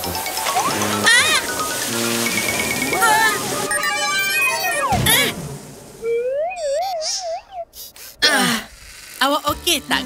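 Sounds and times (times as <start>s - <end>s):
wavering electronic tone: 0.0s - 7.8s
quick high chirps: 6.0s - 7.7s.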